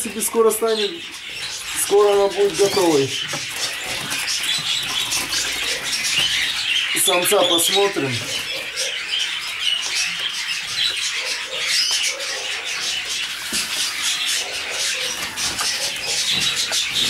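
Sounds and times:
birds chirping and chattering: 0:00.0 - 0:17.0.

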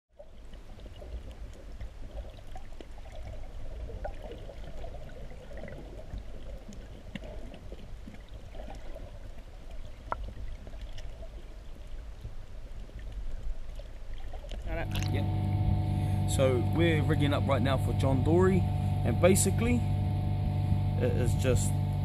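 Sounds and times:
water sloshing underwater: 0:00.1 - 0:21.9
low rumble: 0:14.6 - 0:22.0.

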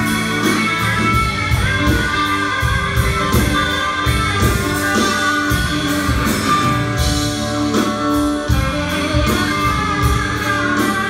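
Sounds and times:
electric guitars: 0:00.0 - 0:11.0
steady drum beat: 0:00.0 - 0:11.0.

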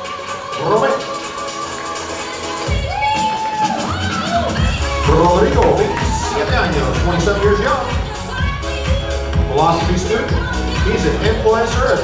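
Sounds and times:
deep bass beat: 0:04.6 - 0:12.0.

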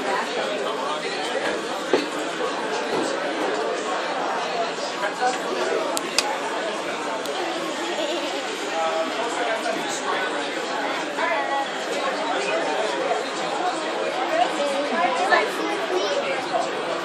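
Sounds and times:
chatter of people talking: 0:00.0 - 0:17.0.

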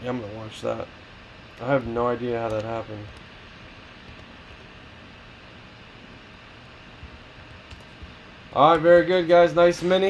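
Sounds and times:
room tone hiss: 0:00.0 - 0:10.0.

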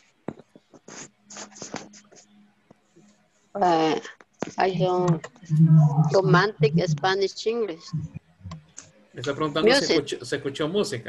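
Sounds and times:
person speaking: 0:03.6 - 0:11.0.

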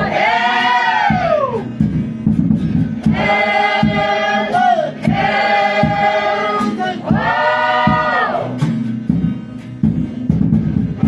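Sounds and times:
choir singing: 0:00.0 - 0:01.6, 0:03.0 - 0:08.6.

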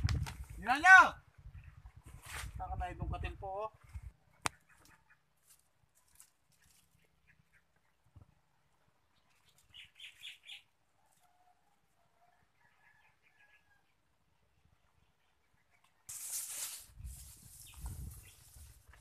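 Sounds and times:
faint bird chirps: 0:09.0 - 0:11.5.

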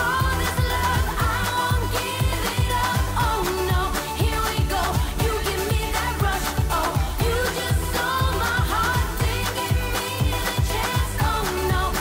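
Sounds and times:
bass: 0:00.0 - 0:12.0
woman singing pop song: 0:00.0 - 0:12.0.

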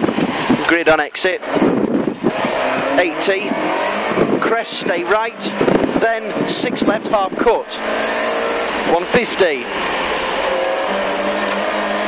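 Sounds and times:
rally car engine accelerating: 0:00.0 - 0:12.0
road noise: 0:00.0 - 0:12.0.

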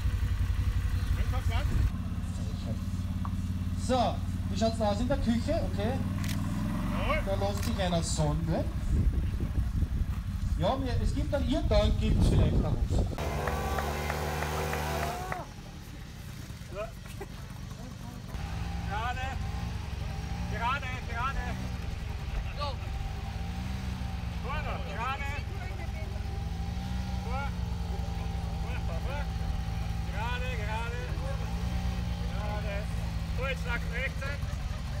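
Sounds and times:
loud engine: 0:00.0 - 0:35.0
small quad engine at low revs: 0:00.0 - 0:35.0
voices in background: 0:00.8 - 0:13.2, 0:24.1 - 0:35.0.

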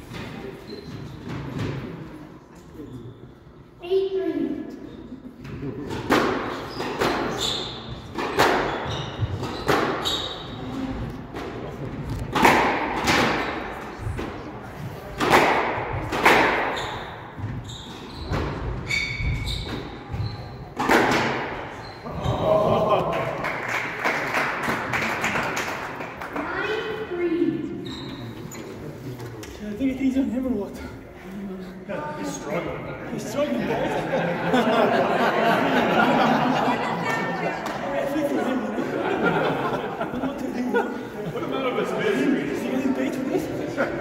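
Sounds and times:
squash ball hits echoing: 0:05.9 - 0:07.4, 0:08.1 - 0:10.1, 0:12.3 - 0:14.4, 0:15.2 - 0:17.6, 0:18.3 - 0:22.4.

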